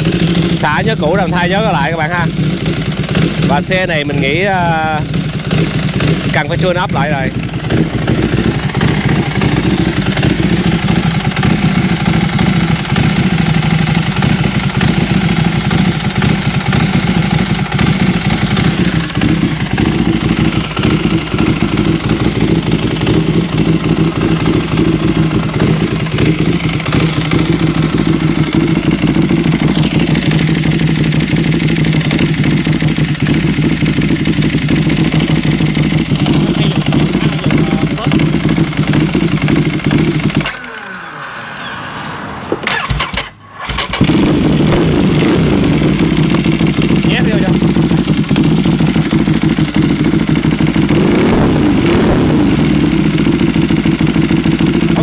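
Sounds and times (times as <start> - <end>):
motorcycle engine idling: 0.0 - 40.9, 42.6 - 55.0.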